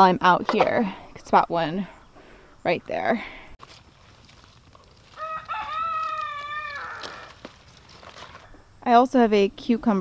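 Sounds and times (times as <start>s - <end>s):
rooster crowing: 5.1s - 7.4s.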